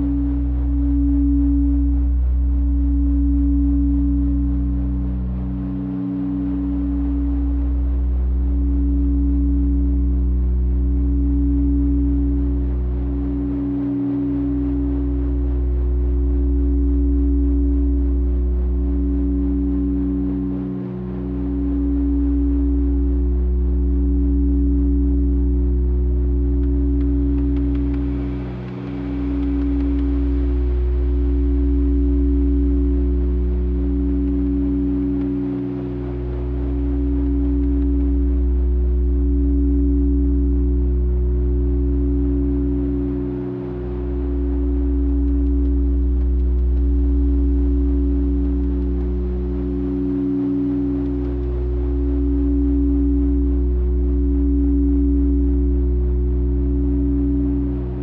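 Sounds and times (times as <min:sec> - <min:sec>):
deep synthesizer drone: 0:00.0 - 0:58.0.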